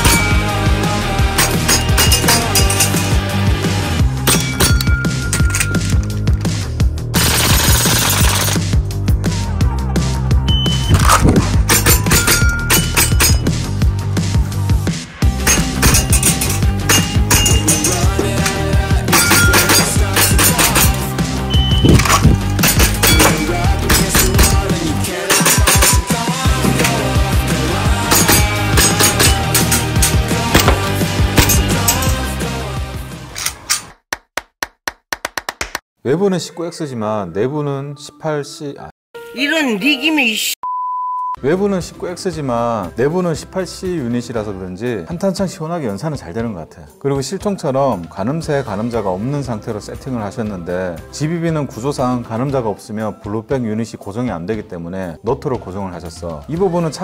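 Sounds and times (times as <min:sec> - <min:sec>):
background music with steady beat: 0:00.0 - 0:33.4
airsoft pistol rapid burst: 0:07.2 - 0:08.6.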